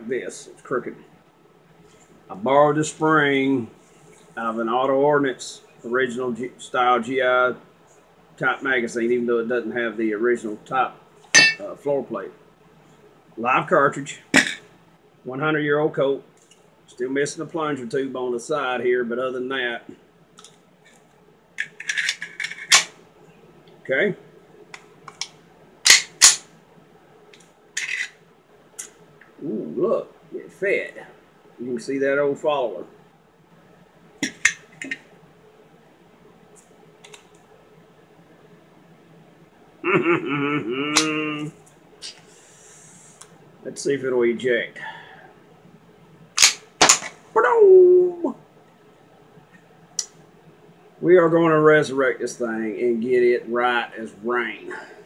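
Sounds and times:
pistol metal parts scraping and clicking: 21.6s - 22.9s, 25.9s - 26.5s, 27.8s - 28.2s, 34.2s - 35.0s, 46.4s - 47.1s
pistol slide metallic clacks: 25.9s - 26.4s, 46.4s - 47.1s
man's short wordless vocal sound: 39.8s - 41.6s.

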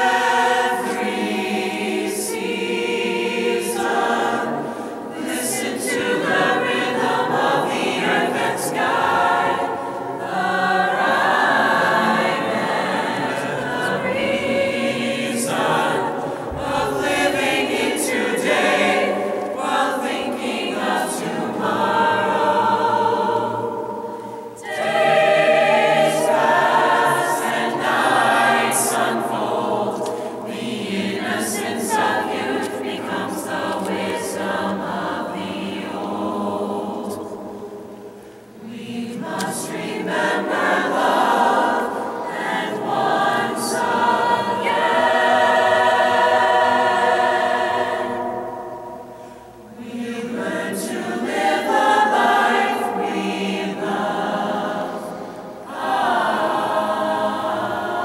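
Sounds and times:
choir singing unaccompanied: 0.0s - 58.0s.

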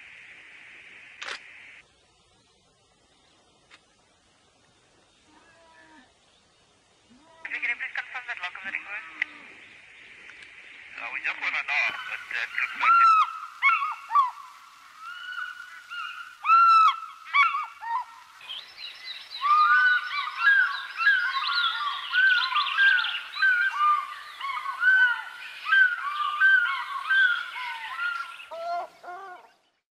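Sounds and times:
birds calling: 5.0s - 29.8s.

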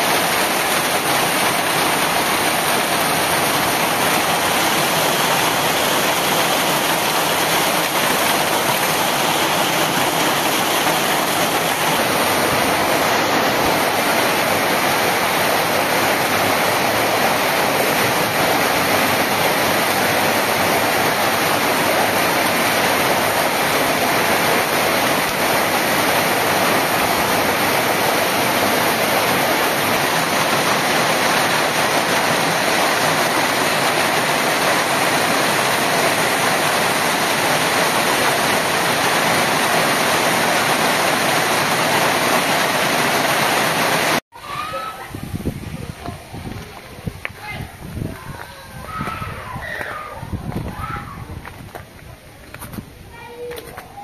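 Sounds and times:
hail and rain pelting ground: 0.0s - 54.0s.

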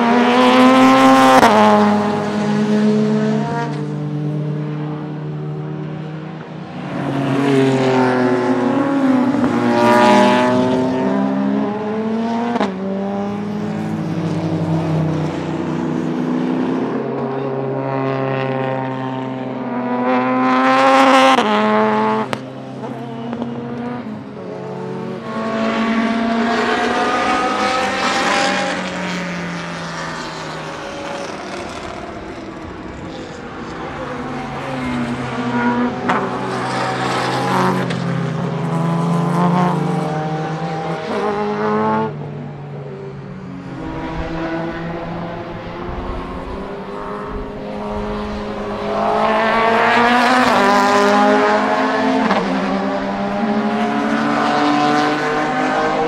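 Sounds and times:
racing engine at high revs: 0.0s - 56.0s.

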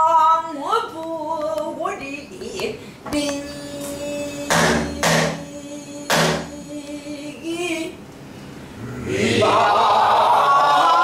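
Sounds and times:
person singing: 3.2s - 8.0s
barrel drum hits: 4.5s - 5.4s, 6.1s - 6.5s.

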